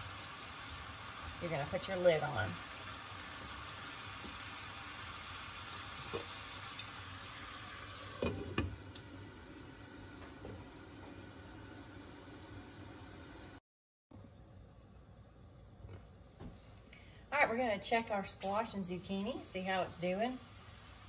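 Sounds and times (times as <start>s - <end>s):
vegetables sizzling in butter: 0.0s - 13.6s, 18.4s - 21.0s.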